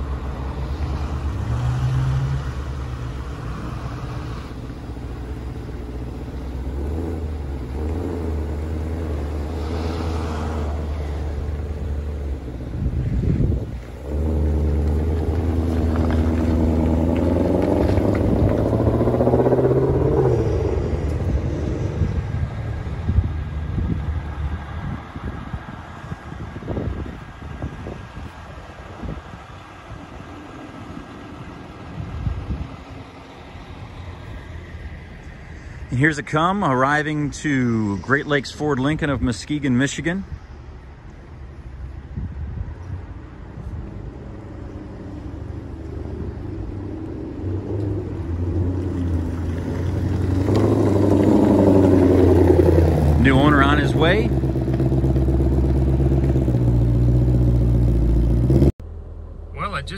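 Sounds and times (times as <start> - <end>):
car engine revving: 0.0 - 23.6, 44.6 - 59.0.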